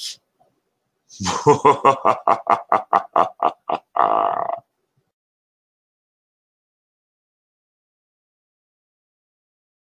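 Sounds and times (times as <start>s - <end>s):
person laughing: 1.2s - 4.6s.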